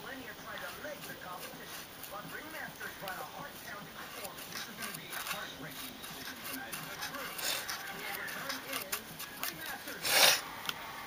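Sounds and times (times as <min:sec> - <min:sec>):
brush scratching on plastic: 0:00.0 - 0:10.5.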